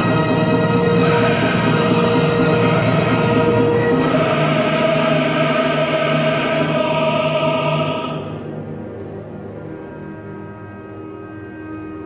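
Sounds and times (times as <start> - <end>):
opera chorus singing: 0.0 - 8.8
orchestra sustained chords: 0.0 - 12.0.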